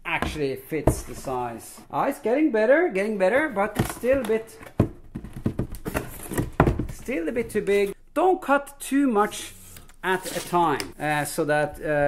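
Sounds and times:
dull thumps: 0.1 - 1.6, 3.4 - 7.8
cardboard rubbing and scraping: 9.5 - 10.8.

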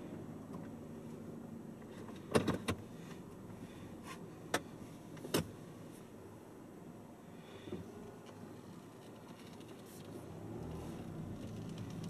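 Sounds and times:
car engine idling hum: 0.0 - 12.0
sharp click in car cabin: 2.1 - 2.8, 4.5 - 5.5.

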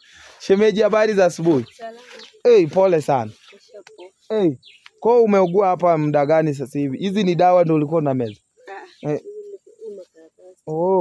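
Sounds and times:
low bird calls: 0.0 - 0.6, 1.2 - 11.0.

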